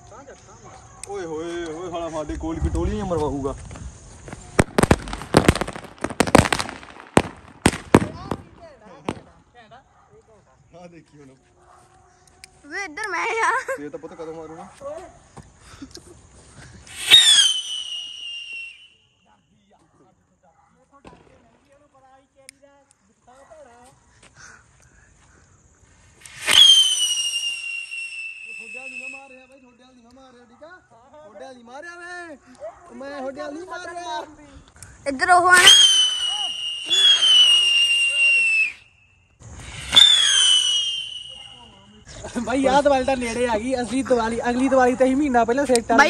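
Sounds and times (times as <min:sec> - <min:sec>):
firework rocket whistling: 0:03.9 - 0:09.3, 0:16.7 - 0:19.1, 0:26.0 - 0:29.6, 0:35.2 - 0:42.1
firework ignition burst: 0:04.5 - 0:09.3, 0:16.8 - 0:18.8, 0:26.1 - 0:29.2, 0:35.5 - 0:38.8, 0:39.4 - 0:41.7.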